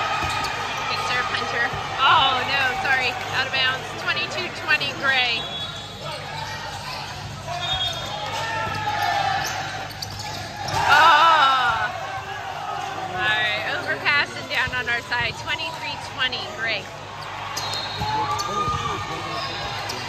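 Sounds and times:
sneakers squeaking on floor: 0.0 - 1.2, 4.3 - 11.2, 17.0 - 20.0
crowd shouting and cheering: 0.0 - 20.0
players calling out: 0.0 - 20.0.

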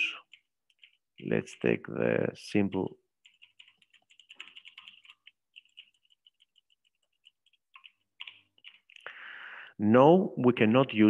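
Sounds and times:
typing on computer keyboard: 0.2 - 1.4, 2.6 - 9.1.

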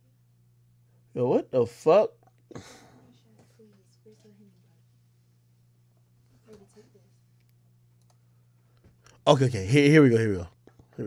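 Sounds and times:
faint low hum: 0.0 - 11.0
computer mouse clicks: 7.4 - 8.2.

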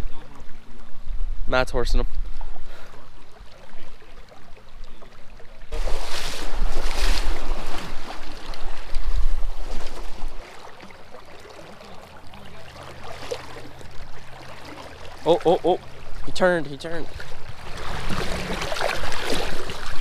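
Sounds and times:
flowing river wash: 0.0 - 20.0
water sloshing from wading: 2.2 - 20.0.

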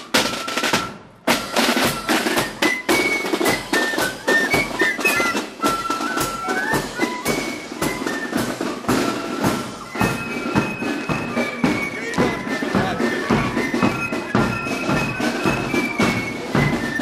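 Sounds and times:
fife melody: 0.0 - 17.0
steady drumbeat: 0.0 - 17.0.

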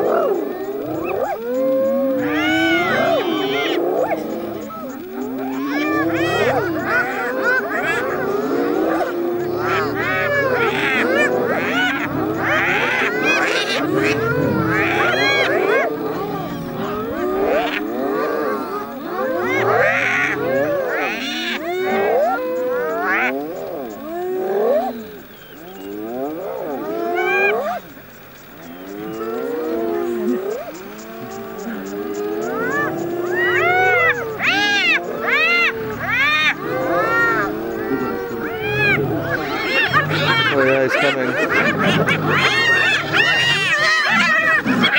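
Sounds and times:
hyenas calling: 0.0 - 44.9.

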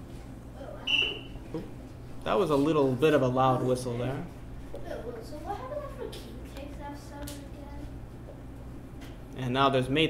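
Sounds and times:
high-pitched whistle: 0.8 - 1.4.

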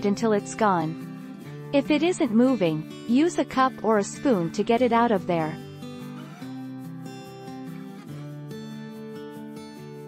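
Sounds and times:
acoustic guitar strumming chords: 0.0 - 10.0.

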